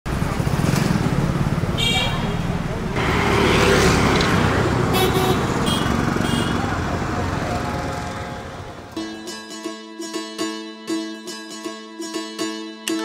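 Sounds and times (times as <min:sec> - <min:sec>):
traffic engines rumbling: 0:00.1 - 0:09.0
vehicle horn toots: 0:01.8 - 0:02.5, 0:04.8 - 0:09.0
people's voices: 0:02.0 - 0:09.0.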